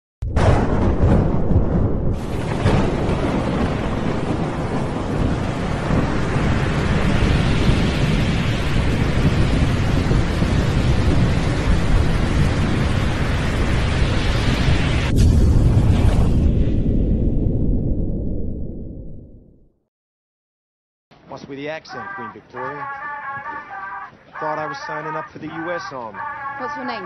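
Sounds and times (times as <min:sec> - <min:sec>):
thunder rumbling: 0:00.2 - 0:19.5.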